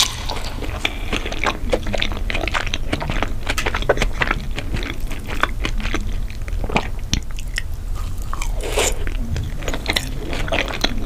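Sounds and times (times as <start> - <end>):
wet chewing mouth clicks: 0.0 - 11.0.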